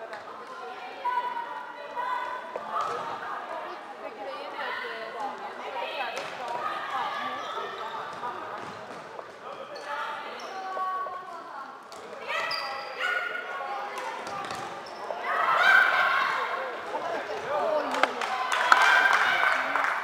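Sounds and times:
players shouting: 15.1s - 20.0s.

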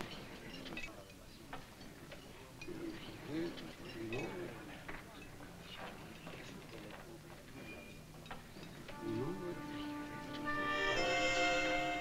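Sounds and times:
faint cafe background: 0.0s - 12.0s.

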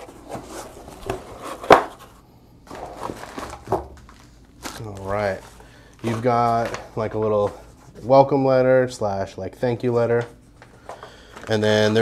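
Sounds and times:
cardboard scraping and rustling: 0.0s - 8.1s.

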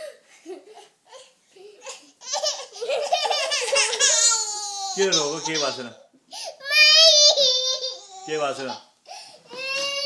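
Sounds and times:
toddler wailing: 3.7s - 5.7s, 6.6s - 8.4s, 9.5s - 10.0s.

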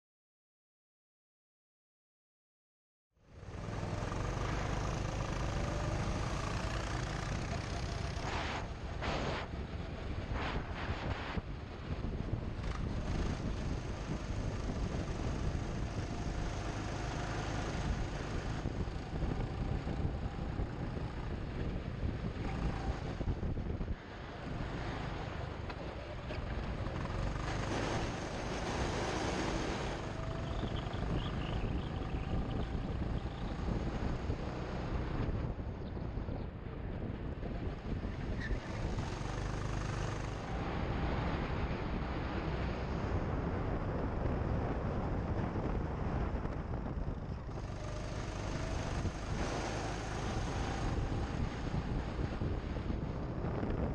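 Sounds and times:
go-kart motor: 3.4s - 10.3s, 11.5s - 36.2s, 36.9s - 53.8s
wind rushing on microphone: 3.4s - 53.9s
faint whine: 3.9s - 14.7s.

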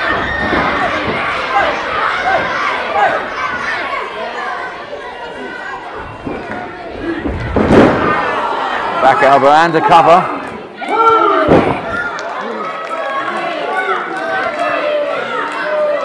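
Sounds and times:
crowd chattering and calling out: 0.0s - 16.0s.

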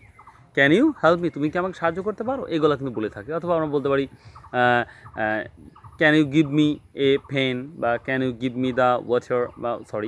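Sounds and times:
man speaking: 0.5s - 10.0s.

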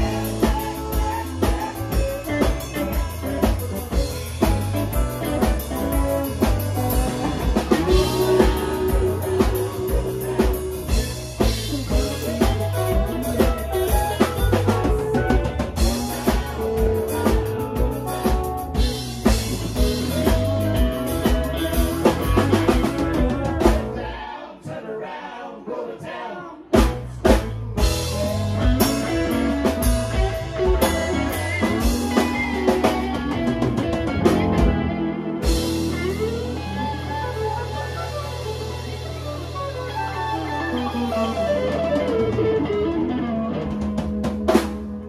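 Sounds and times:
live band playing: 0.0s - 24.9s, 26.6s - 45.0s
drum hits: 26.8s - 31.2s.

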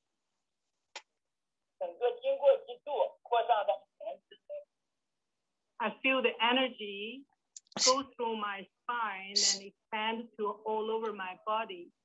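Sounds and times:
man talking over telephone line: 1.8s - 4.7s.

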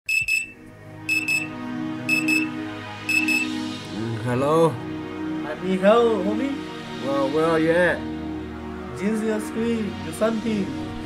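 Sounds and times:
high electronic double beep: 0.1s - 1.5s, 2.1s - 2.5s, 3.1s - 3.6s.

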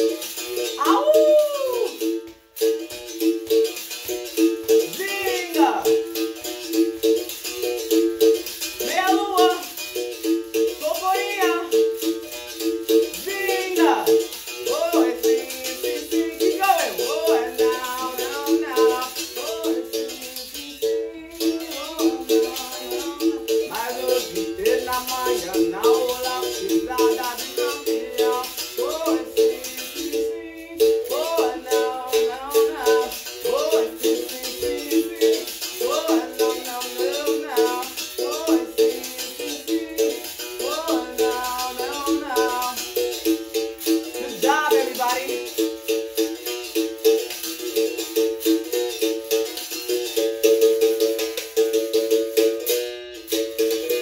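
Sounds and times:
rattle shaking: 0.0s - 54.0s.

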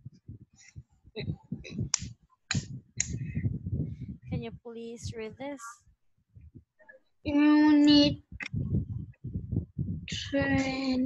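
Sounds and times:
faint low murmur: 0.0s - 5.8s, 7.3s - 11.0s.

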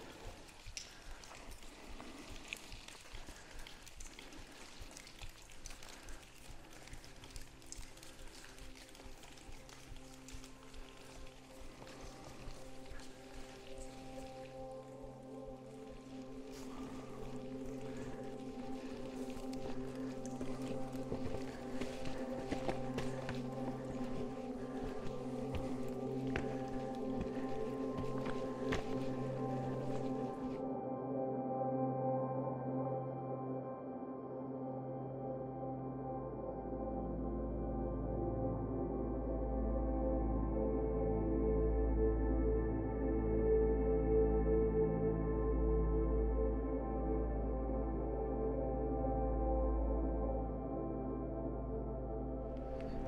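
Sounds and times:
faint clicks: 0.0s - 14.4s
music of sustained chords: 0.0s - 53.0s.

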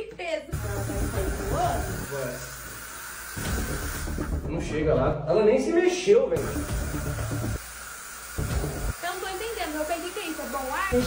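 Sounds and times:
aerosol can spraying: 0.5s - 4.4s, 6.4s - 11.0s.

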